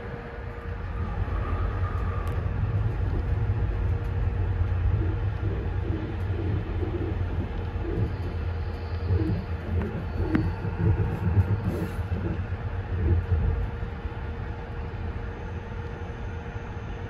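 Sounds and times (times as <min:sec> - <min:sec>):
train wheels rumbling on track: 0:00.0 - 0:14.6.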